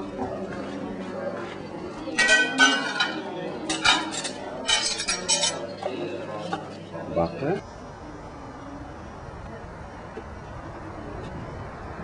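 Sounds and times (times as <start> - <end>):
metal spoons clinking on metal: 2.2 - 5.9.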